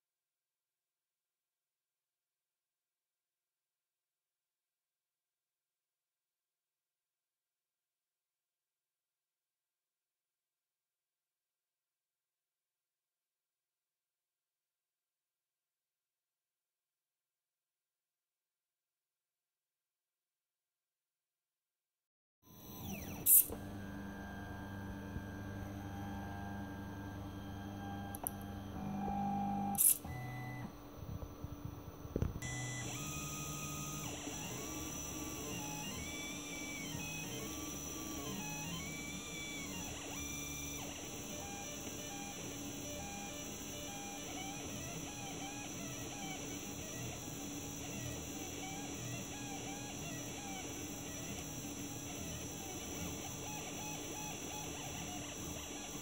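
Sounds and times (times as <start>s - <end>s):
stepper motors whining: 22.6s - 30.7s, 32.4s - 56.0s.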